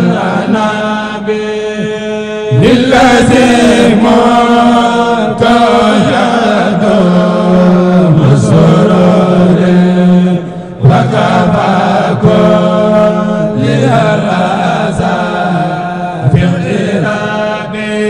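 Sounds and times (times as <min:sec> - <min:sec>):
man chanting a devotional song: 0:00.0 - 0:18.0.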